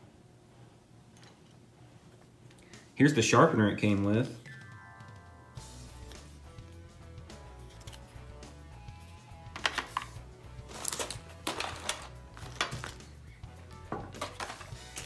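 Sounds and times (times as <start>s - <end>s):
soft background music: 2.8s - 15.0s
plastic items clicking and rustling: 9.6s - 13.2s, 13.9s - 15.0s.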